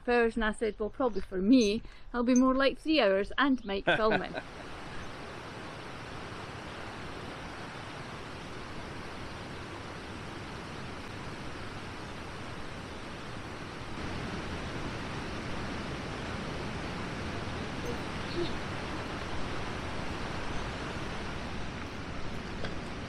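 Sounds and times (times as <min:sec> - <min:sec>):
river water rushing: 0:04.3 - 0:23.0.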